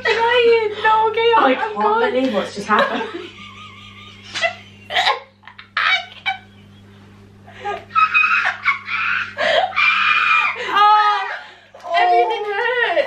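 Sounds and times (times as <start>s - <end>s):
young women shrieking laughter: 4.3s - 6.5s, 7.5s - 13.0s.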